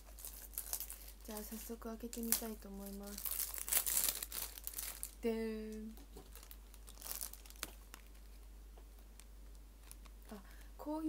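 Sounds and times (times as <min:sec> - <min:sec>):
cellophane crinkling: 0:00.0 - 0:10.7.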